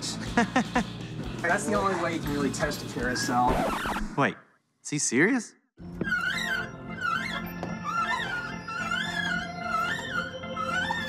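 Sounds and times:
carousel music wavering melody: 0:05.8 - 0:11.0.

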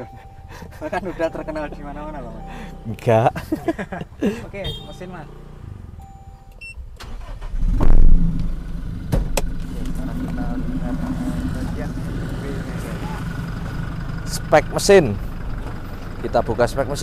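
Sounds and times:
diesel engine starting and idling: 0:00.0 - 0:17.0.

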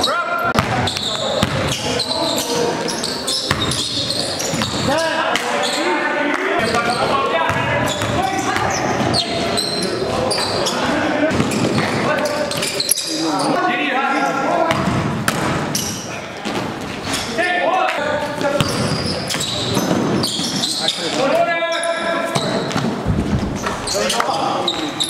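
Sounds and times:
basketball bouncing on court: 0:00.6 - 0:02.0, 0:02.8 - 0:05.0, 0:06.6 - 0:09.8, 0:11.3 - 0:12.7, 0:14.7 - 0:16.8, 0:18.4 - 0:20.6.

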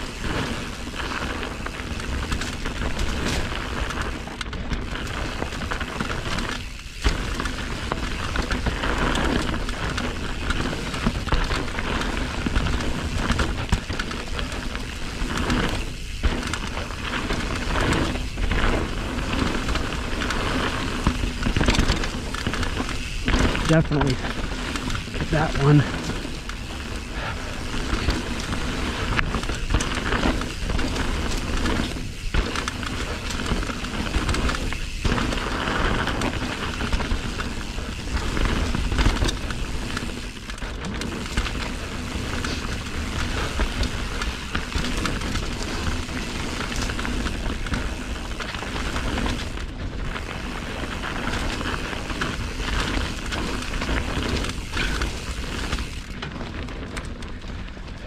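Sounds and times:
bike chain and frame rattling: 0:00.0 - 0:58.0
tyres rolling on dirt: 0:00.0 - 0:58.0.

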